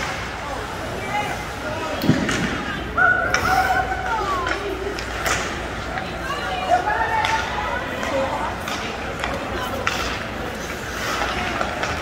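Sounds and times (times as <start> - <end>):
hockey stick clack: 4.4 - 6.2, 7.1 - 12.0.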